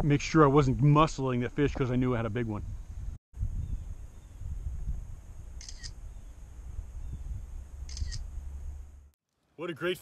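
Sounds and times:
wind rumble on microphone: 2.3 - 9.1
phone camera shutter clicks: 5.6 - 6.0, 7.9 - 8.2.

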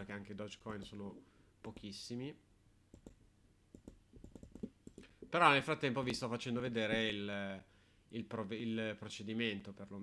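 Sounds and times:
computer mouse clicks: 2.9 - 5.2.

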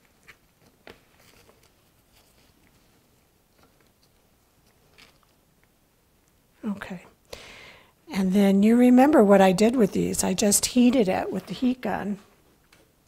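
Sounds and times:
gloved fingers handling clay: 0.0 - 6.4.

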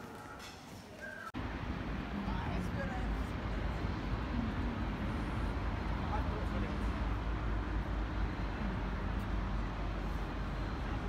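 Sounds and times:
distant voices: 0.0 - 11.0
low city rumble: 0.0 - 11.0.

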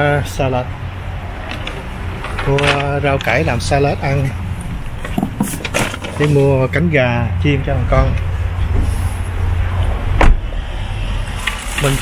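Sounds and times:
low rumble of outdoor noise: 0.0 - 12.0.

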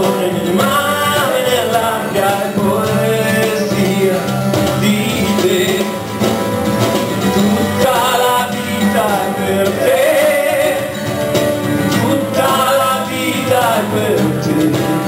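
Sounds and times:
man singing: 0.0 - 6.3, 7.2 - 15.0
guitar accompaniment: 0.0 - 15.0.

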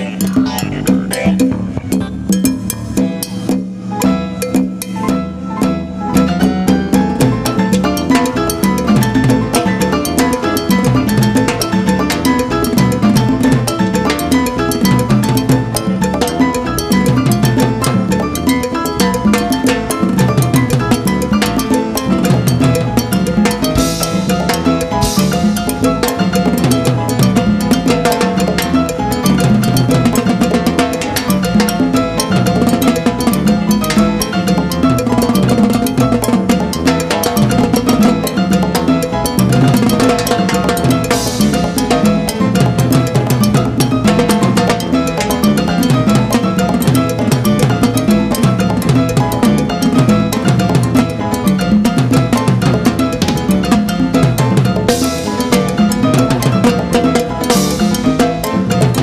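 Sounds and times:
salsa band playing: 0.0 - 59.0
fast stick strokes on timbales: 6.7 - 59.0.

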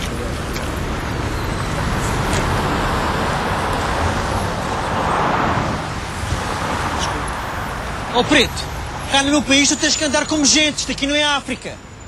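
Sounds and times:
cars passing: 0.0 - 12.0
road traffic rumble: 0.0 - 12.0.

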